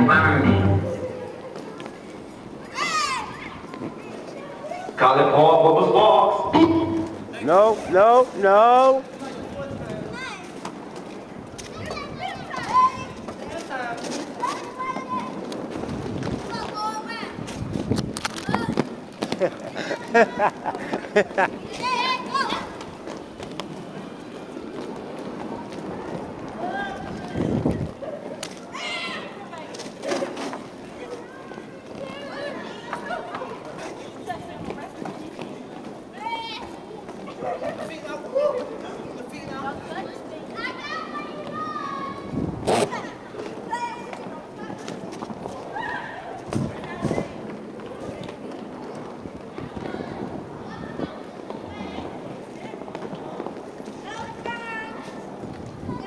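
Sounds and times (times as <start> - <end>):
voices calling out in a hall: 0.0 - 10.5, 26.3 - 56.0
roller-skate wheels on wooden floor: 0.6 - 5.0, 6.4 - 56.0
people talking: 2.7 - 10.6, 11.6 - 15.5, 16.4 - 17.5, 18.4 - 22.9, 25.5 - 55.2.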